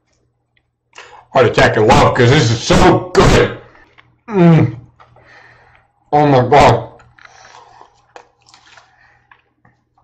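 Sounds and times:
lip smacks and clicks: 0:03.8 - 0:04.2, 0:07.0 - 0:10.0
wet chewing: 0:07.0 - 0:10.0.

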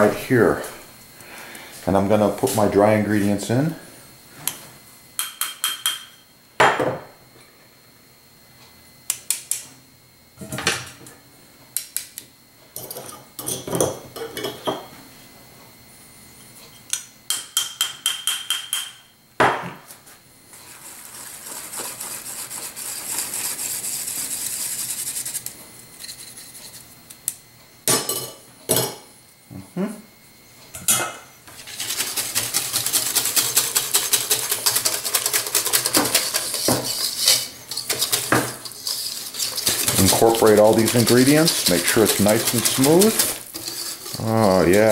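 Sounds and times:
whisk beating batter in bowl: 0:20.6 - 0:25.5, 0:31.5 - 0:44.9
spoon scraping flour through mesh: 0:31.5 - 0:44.9
sifter tapping metal bowl: 0:31.6 - 0:44.9.

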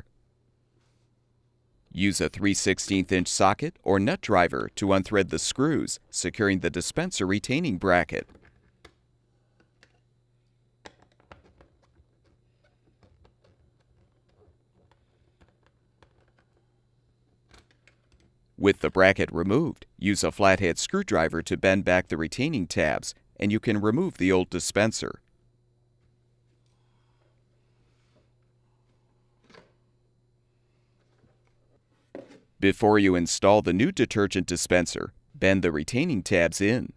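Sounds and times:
low steady hum: 0:00.0 - 0:36.9.

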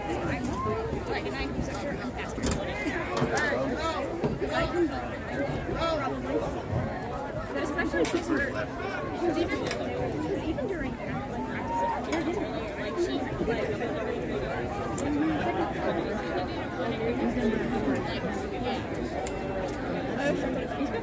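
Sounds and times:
chatter of many people: 0:00.0 - 0:21.0.

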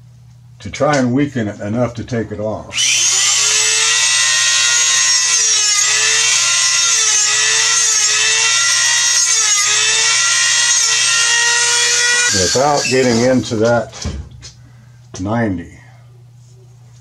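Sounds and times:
rotary tool whining: 0:02.7 - 0:13.5.

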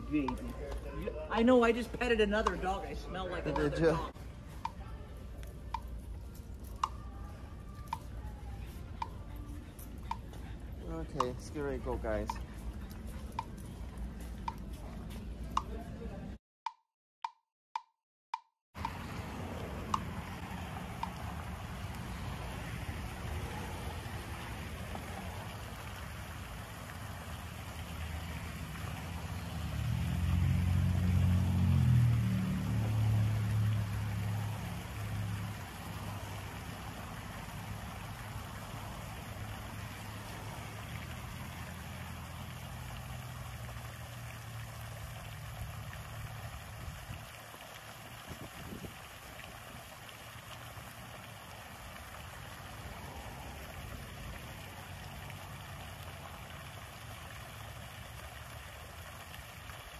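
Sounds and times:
fountain water splashing: 0:00.0 - 0:16.4, 0:18.8 - 0:59.9
vehicle engine hum: 0:18.8 - 0:48.1, 0:50.0 - 0:59.9.

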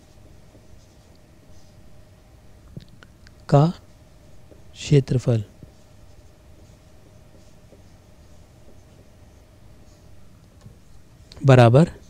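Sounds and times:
marker scratching on whiteboard: 0:00.0 - 0:02.1, 0:05.4 - 0:11.3.

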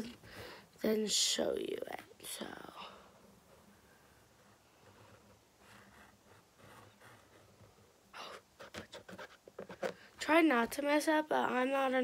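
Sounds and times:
person breathing: 0:00.1 - 0:00.8
marker strokes on fabric: 0:04.4 - 0:10.0.

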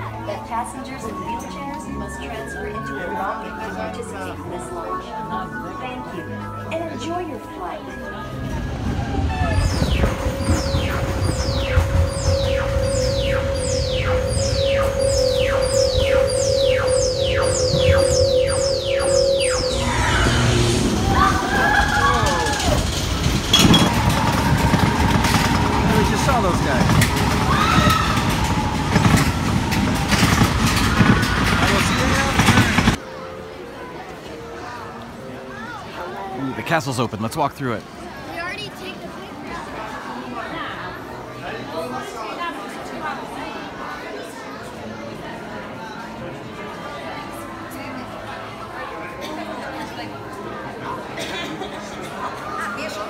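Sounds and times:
roller coaster train rumbling: 0:07.5 - 0:33.1
falling electronic whoosh: 0:08.6 - 0:31.8
steady hum: 0:09.7 - 0:25.8
riders crying out: 0:19.7 - 0:26.2, 0:26.8 - 0:32.7.

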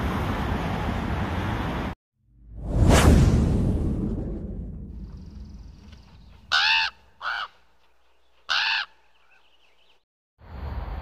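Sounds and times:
crow cawing: 0:06.5 - 0:07.7, 0:08.5 - 0:09.4.

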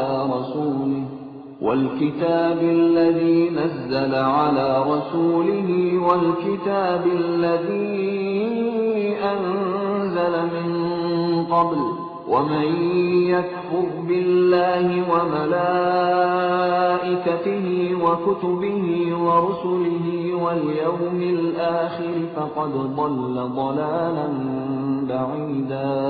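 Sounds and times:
man chanting melodically: 0:00.0 - 0:26.0.

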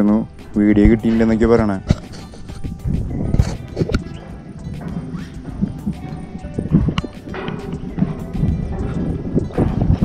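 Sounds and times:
background music: 0:00.0 - 0:10.0
footsteps on steel stair treads: 0:00.0 - 0:10.0.

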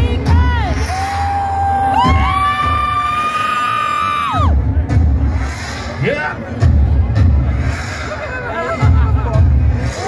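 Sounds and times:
heavy bass kicks: 0:00.0 - 0:01.1.

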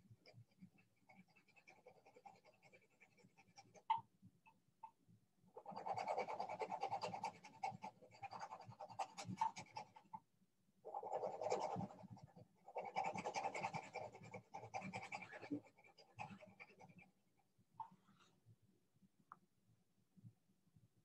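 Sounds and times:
pencil scratching on paper: 0:00.0 - 0:04.0, 0:05.6 - 0:10.2, 0:10.9 - 0:17.2.

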